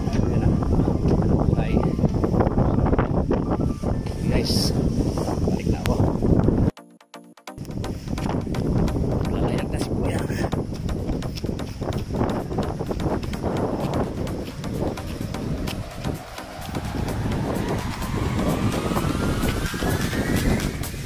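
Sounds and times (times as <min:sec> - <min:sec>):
rumbling wind: 0:00.0 - 0:06.7, 0:07.6 - 0:21.0
whine rising in pitch: 0:12.6 - 0:21.0.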